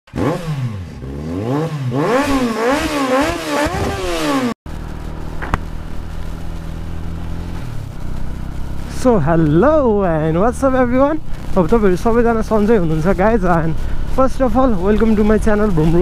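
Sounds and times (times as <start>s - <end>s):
motorcycle engine revving: 0.1s - 16.0s
motorcycle engine idling: 4.7s - 16.0s.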